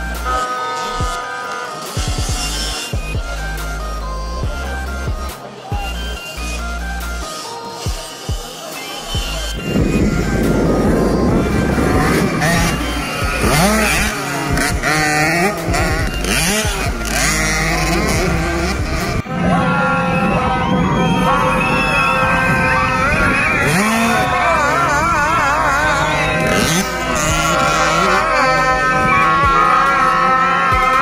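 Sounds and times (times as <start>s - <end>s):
dirt bike engines revving: 0.0s - 31.0s
music: 0.0s - 31.0s.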